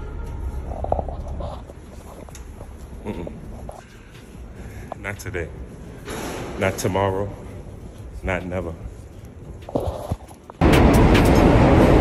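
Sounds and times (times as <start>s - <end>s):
low rumbling noise: 10.6s - 12.0s.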